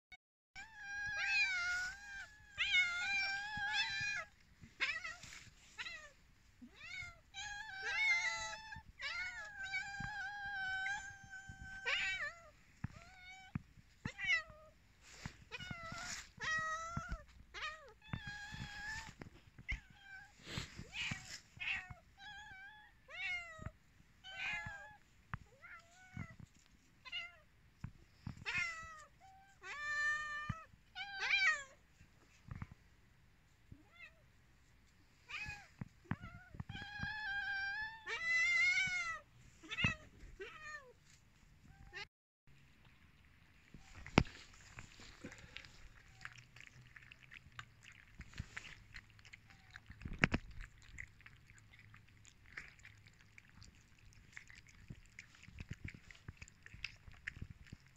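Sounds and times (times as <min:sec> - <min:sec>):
cats meowing: 0:00.6 - 0:27.4, 0:28.2 - 0:31.8, 0:35.2 - 0:41.0.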